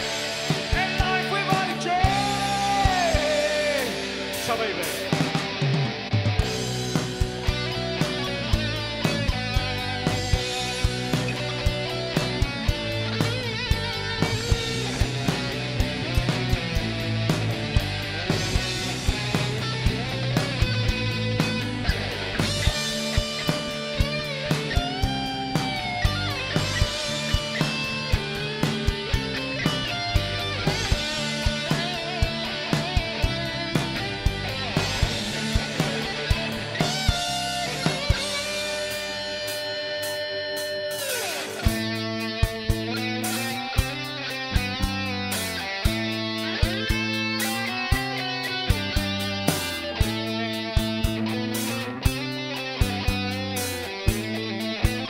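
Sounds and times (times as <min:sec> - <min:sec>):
bass guitar: 0:00.0 - 0:55.0
electric guitars: 0:00.0 - 0:55.0
steady drum beat: 0:00.0 - 0:55.0.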